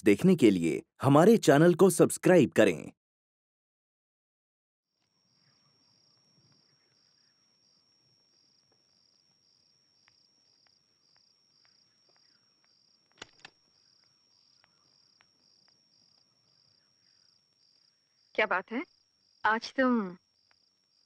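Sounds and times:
cricket chirping in pulses: 5.0s - 21.0s
cricket trilling: 5.0s - 21.0s
sharp clicks: 13.1s - 13.6s.

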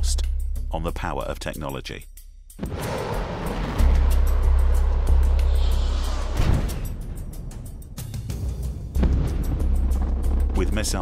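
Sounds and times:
background music: 0.0s - 11.0s
rocket exhaust rushing: 2.6s - 7.7s
heavy deep rumble: 2.6s - 8.2s.

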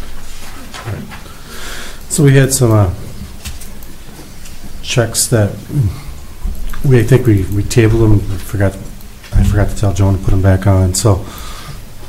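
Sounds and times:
room background noise with low hum: 0.0s - 12.0s
person speaking: 2.0s - 3.3s, 4.7s - 11.4s.

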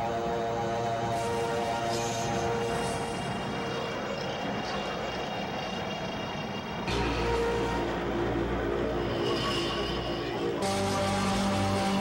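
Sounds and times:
faint music: 0.0s - 12.0s
rushing engine noise: 0.0s - 12.0s.

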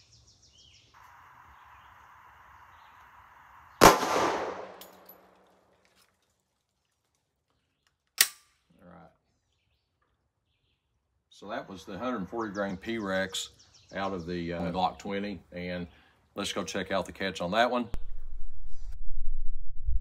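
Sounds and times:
pistol shot with echo: 3.8s - 5.1s.

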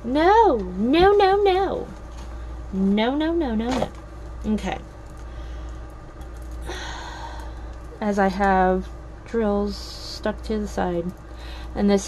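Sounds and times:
steady low hum: 0.0s - 12.0s
woman sighing: 6.7s - 7.6s.

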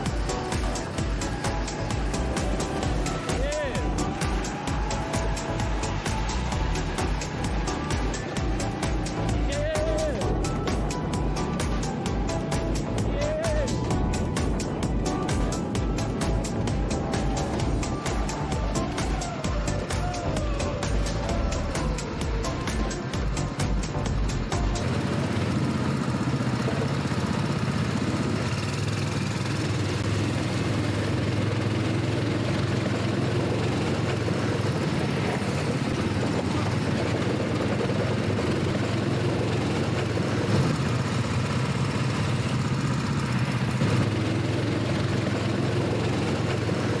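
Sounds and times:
go-kart engine running: 0.0s - 47.0s.

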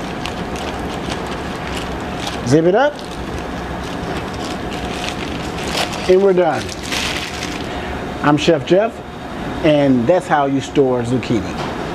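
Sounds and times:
plastic zipper bag rustling: 0.0s - 7.8s
commercial kitchen background noise: 0.0s - 11.9s.

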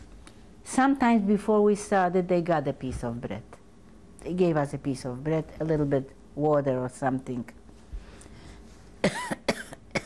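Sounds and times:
elderly woman coughing: 9.0s - 10.0s.

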